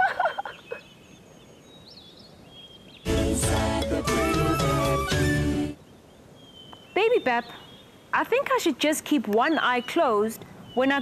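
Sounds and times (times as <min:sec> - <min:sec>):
low hiss: 0:00.0 - 0:11.0
bird chirps and whistles: 0:04.0 - 0:05.8.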